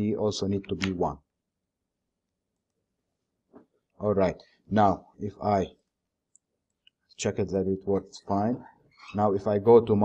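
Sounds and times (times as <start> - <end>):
person speaking: 0.0 - 1.2, 4.0 - 5.8, 7.2 - 10.0.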